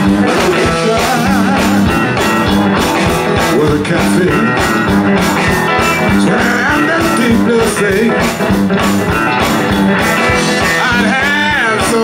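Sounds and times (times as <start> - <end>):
drum kit beat: 0.0 - 12.0
electric guitars: 0.0 - 12.0.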